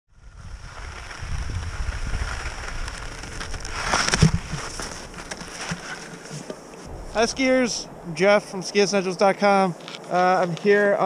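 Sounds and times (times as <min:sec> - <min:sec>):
wind rumble on microphone: 0:00.1 - 0:05.7, 0:06.9 - 0:08.4
skis scraping on snow: 0:00.2 - 0:07.8.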